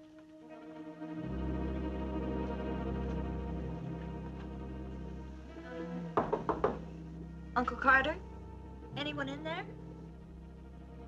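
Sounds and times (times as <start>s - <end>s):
knocks on wooden door: 6.2s - 6.9s
person speaking: 8.9s - 9.7s.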